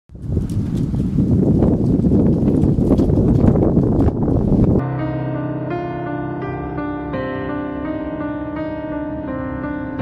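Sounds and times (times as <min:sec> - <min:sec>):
slow soft instrumental music: 0:04.8 - 0:10.0.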